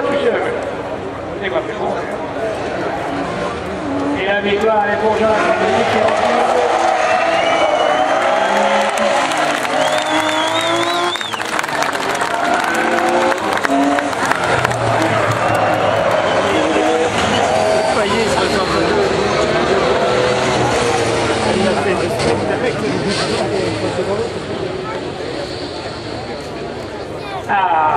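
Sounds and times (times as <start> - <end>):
race car engines: 0.0 - 27.9
man commentating over loudspeakers: 4.1 - 7.1, 27.4 - 27.9.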